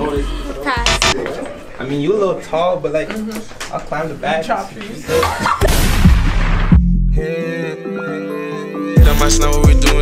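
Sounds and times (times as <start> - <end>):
boom hit with deep bass: 5.6 - 7.0.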